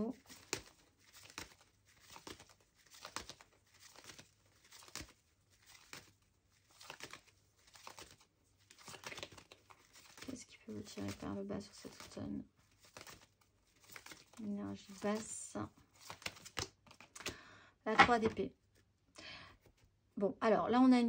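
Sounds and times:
cards being shuffled by hand: 0.0s - 18.8s.

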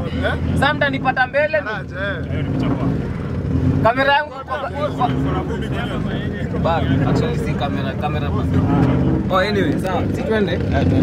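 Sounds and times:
car engine idling: 0.0s - 11.0s
people talking: 3.8s - 11.0s.

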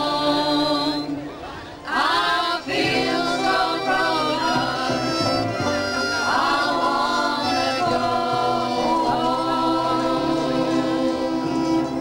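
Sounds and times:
acoustic guitar: 0.0s - 12.0s
group singing folk song: 0.0s - 12.0s.

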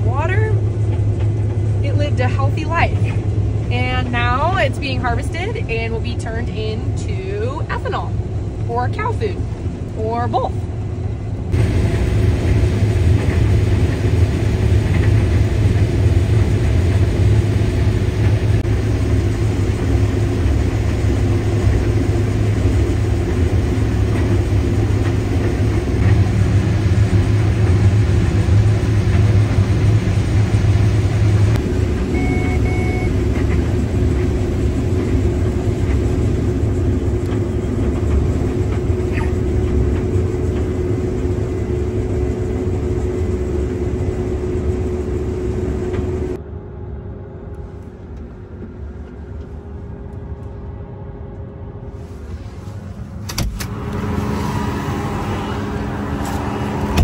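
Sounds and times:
combine harvester engine under load: 0.0s - 57.0s
short beeps from cab monitor: 32.1s - 33.1s.

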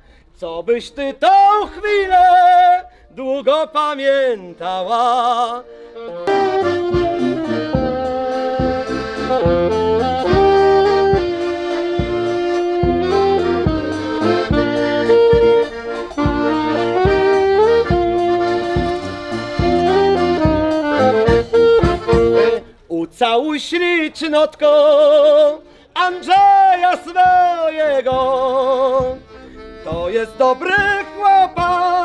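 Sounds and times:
band playing dance tune: 6.0s - 22.7s, 26.0s - 32.0s.

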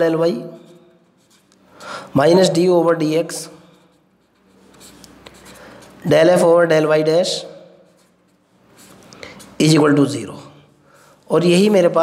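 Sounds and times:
pen scratching on paper: 0.5s - 2.6s, 3.2s - 10.2s.

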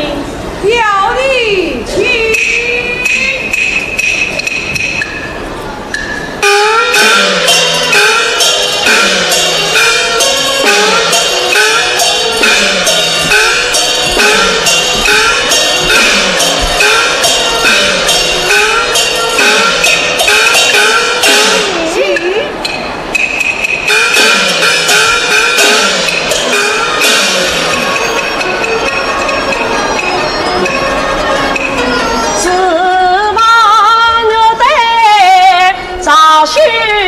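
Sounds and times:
gongs with falling pitch: 2.3s - 32.6s
drum strokes: 2.4s - 32.4s
cymbal crashes: 6.4s - 21.8s.

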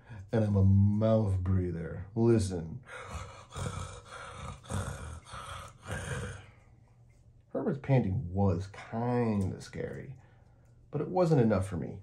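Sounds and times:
man panting like a monster: 2.9s - 6.5s.

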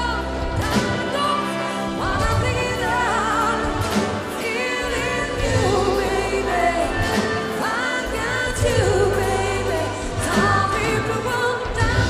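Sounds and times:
drums: 0.0s - 12.0s
electric guitar: 0.0s - 12.0s
vocalists singing together: 0.0s - 12.0s
electric bass: 8.0s - 12.0s.

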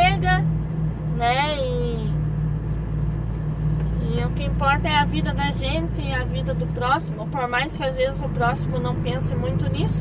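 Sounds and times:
truck diesel engine drone: 0.0s - 10.0s.

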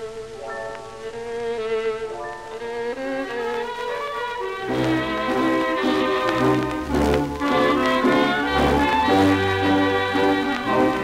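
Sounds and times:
dance orchestra playing tango: 0.0s - 11.0s
record surface hiss: 0.0s - 11.0s.

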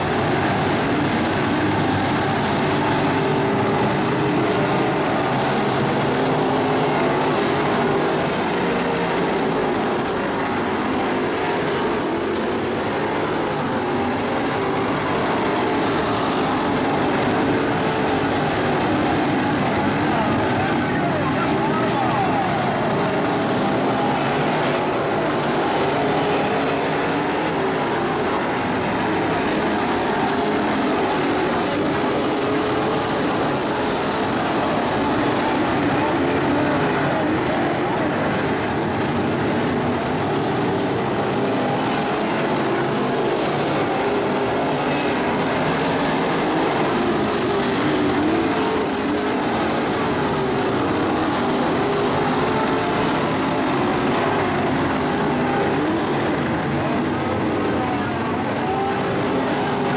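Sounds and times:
race car engines roaring: 0.0s - 59.9s.

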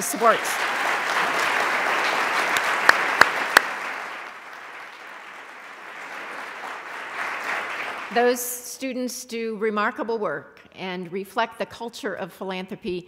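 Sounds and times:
audience applauding: 0.0s - 8.2s
sharp loud claps: 0.0s - 8.2s.

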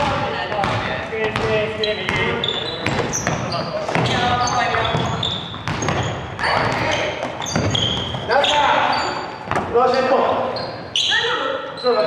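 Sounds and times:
basketball bouncing on wooden floor: 0.0s - 9.7s
players calling out: 0.0s - 12.0s.

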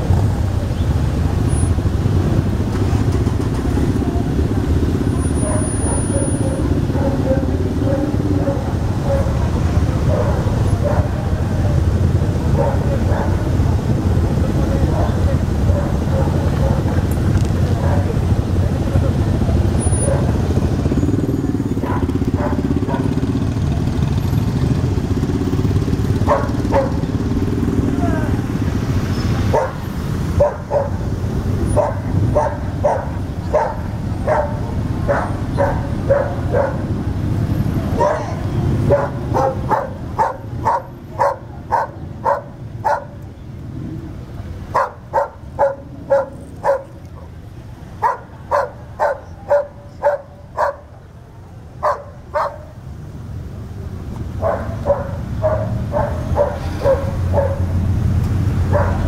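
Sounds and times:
motorcycle engines rumbling: 0.0s - 59.0s
dog barking: 5.4s - 11.8s, 12.4s - 13.6s, 14.8s - 17.0s, 17.7s - 18.2s, 19.9s - 20.4s, 21.8s - 23.2s, 26.2s - 27.1s, 29.5s - 31.1s, 31.7s - 37.0s, 37.9s - 43.2s, 44.7s - 47.4s, 48.0s - 51.0s, 51.8s - 52.8s, 54.4s - 57.8s, 58.7s - 59.0s.

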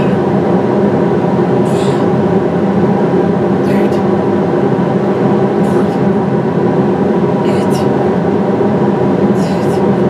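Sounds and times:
industrial fans rushing drone: 0.0s - 10.0s.

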